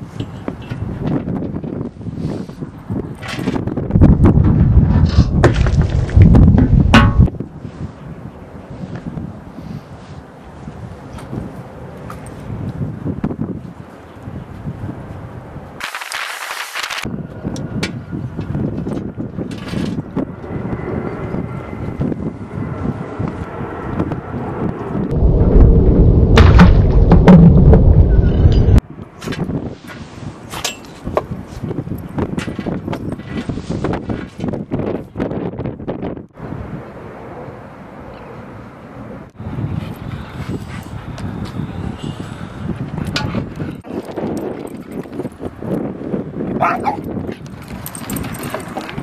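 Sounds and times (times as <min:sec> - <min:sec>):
wind buffeting microphone: 0:00.0 - 0:15.8, 0:17.0 - 0:37.3, 0:39.0 - 0:49.0.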